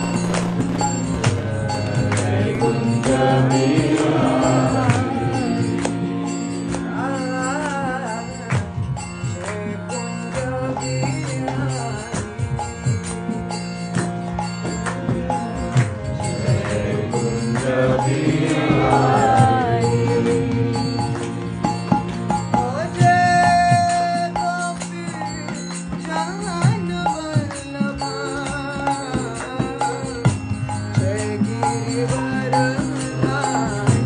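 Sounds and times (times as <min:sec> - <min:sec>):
sharp percussive strikes: 0:00.0 - 0:05.1
sustained pitched tones: 0:00.0 - 0:06.3
held chord: 0:00.0 - 0:08.2
devotional chanting: 0:00.0 - 0:34.0.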